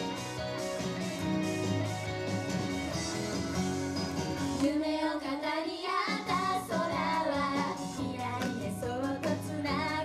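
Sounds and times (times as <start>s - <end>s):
recorded backing track: 0.0s - 10.0s
girls singing pop song: 4.6s - 10.0s.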